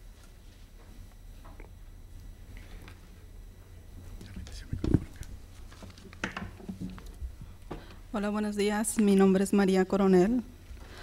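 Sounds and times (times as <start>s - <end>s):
microphone being handled: 4.1s - 7.9s.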